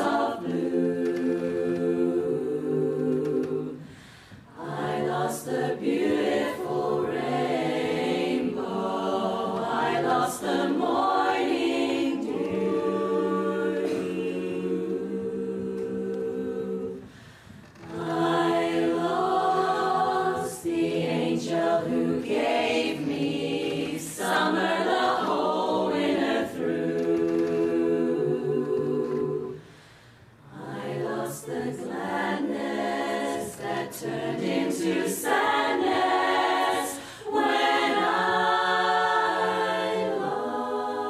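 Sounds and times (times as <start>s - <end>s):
women's chorus singing a cappella: 0.0s - 41.0s.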